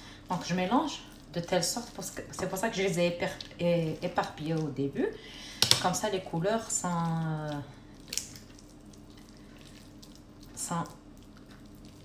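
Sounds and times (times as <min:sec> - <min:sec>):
faint steady hum: 0:00.0 - 0:12.0
wet stirring in a bowl: 0:00.2 - 0:05.0, 0:05.6 - 0:12.0.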